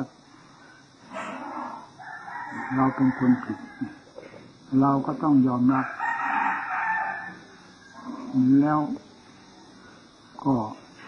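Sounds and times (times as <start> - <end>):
rooster crowing: 1.2 - 4.2, 5.7 - 8.4.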